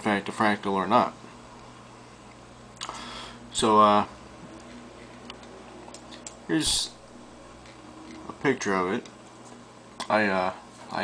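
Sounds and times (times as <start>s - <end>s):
low hum: 1.2s - 10.0s.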